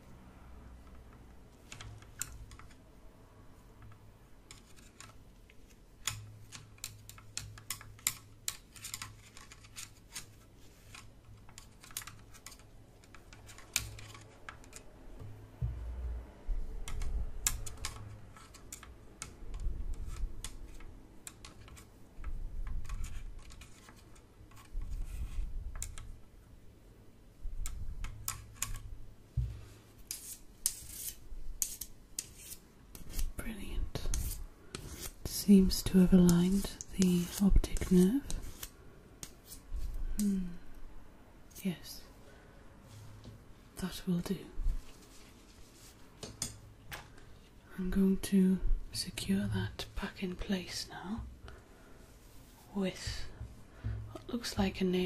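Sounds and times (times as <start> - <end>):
low bumping and rubbing: 15.6 - 16.6.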